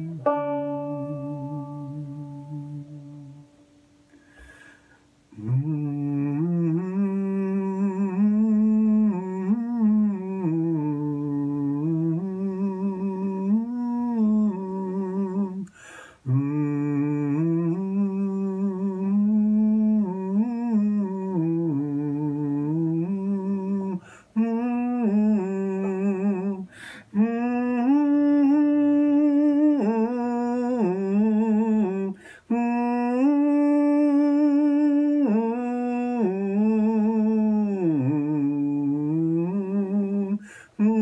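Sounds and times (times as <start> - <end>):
man humming a slow melody: 0.0 - 41.0.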